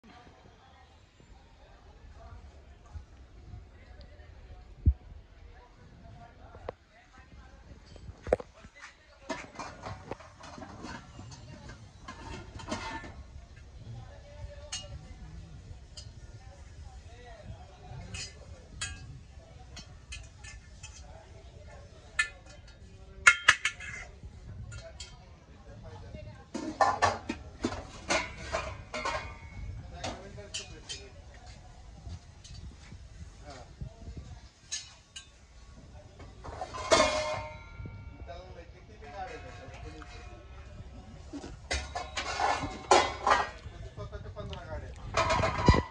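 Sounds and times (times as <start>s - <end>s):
metal vessels clinking: 9.2s - 15.2s, 17.9s - 25.2s, 26.5s - 31.2s, 34.6s - 35.4s, 36.2s - 38.2s, 41.4s - 43.7s, 45.1s - 45.9s
brass pot clanking and ringing: 36.7s - 38.2s.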